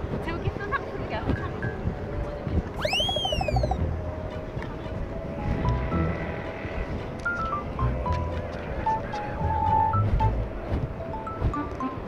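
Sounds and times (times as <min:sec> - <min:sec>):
low wind rumble: 0:00.0 - 0:12.0
cartoon swooping whistle: 0:02.8 - 0:03.8.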